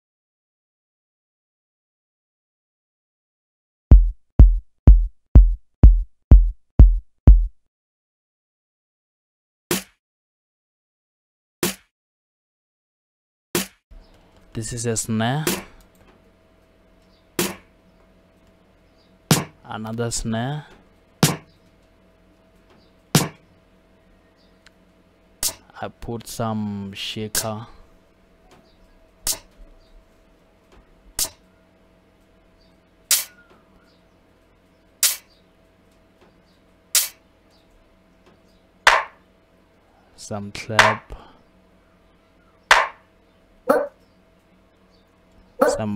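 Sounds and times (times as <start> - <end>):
faint steady hum: 14.0 - 45.9
hi-hat hits: 19.3 - 19.6, 21.2 - 21.5, 23.2 - 23.4, 33.1 - 33.3, 35.0 - 35.3, 37.0 - 37.2
shaker hits: 19.3 - 19.6, 21.2 - 21.4, 23.2 - 23.4, 33.1 - 33.3, 35.0 - 35.2, 37.0 - 37.2, 42.7 - 43.0
snare drum hit: 19.3 - 19.6, 21.2 - 21.4, 23.2 - 23.4, 38.9 - 39.2, 40.8 - 41.0, 42.7 - 43.0.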